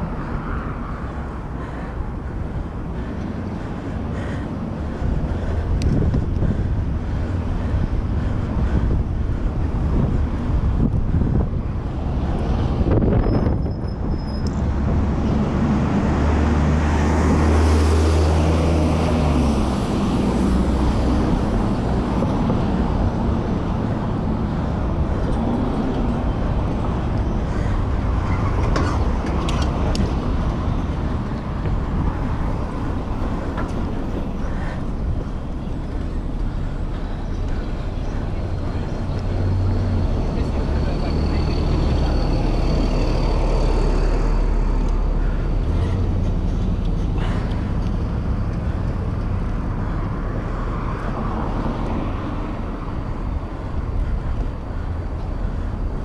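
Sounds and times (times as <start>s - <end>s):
steady low rumble: 0.0s - 17.7s, 18.4s - 56.0s
city traffic: 0.0s - 56.0s
wind rushing over microphone: 0.0s - 56.0s.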